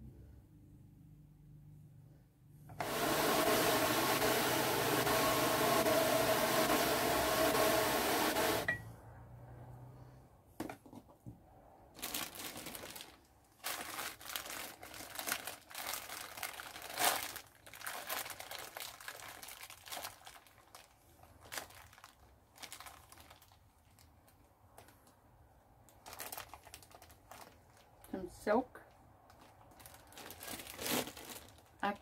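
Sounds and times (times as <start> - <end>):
plastic bags crinkling: 12.0 - 25.1, 25.9 - 28.2, 29.3 - 32.0.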